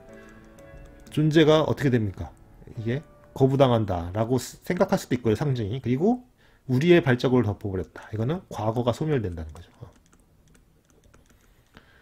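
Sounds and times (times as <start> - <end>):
stylus tapping on pen tablet: 0.0 - 2.5, 9.1 - 12.0.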